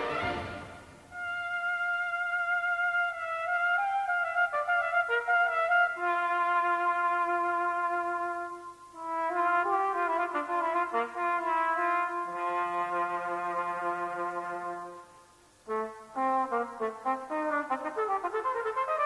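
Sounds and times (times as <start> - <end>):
brass band accompaniment: 0.0 - 19.0
cornet solo: 0.0 - 19.0.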